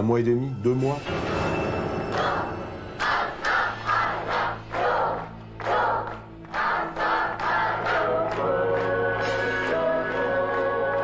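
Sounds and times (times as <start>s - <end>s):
music with low drone: 0.0s - 11.0s
voices chanting rhythmic shouts: 2.1s - 11.0s.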